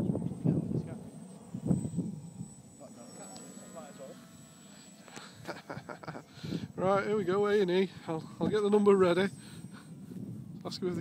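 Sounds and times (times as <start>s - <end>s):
model aircraft motor whine: 0.0s - 11.0s.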